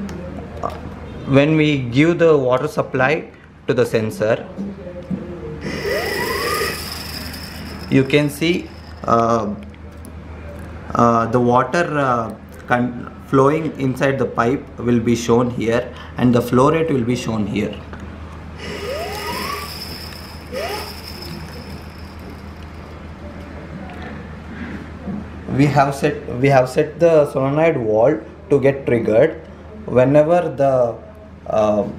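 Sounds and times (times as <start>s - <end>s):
short rising whistles: 5.6s - 9.2s, 18.6s - 23.1s
flow sensor rotor whine: 5.6s - 9.5s, 18.6s - 23.4s
steady low hum: 5.6s - 11.6s, 17.3s - 24.6s.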